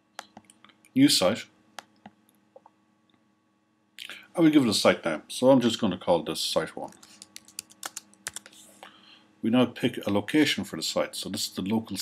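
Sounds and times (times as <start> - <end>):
computer keyboard keys clicking: 6.9 - 8.5.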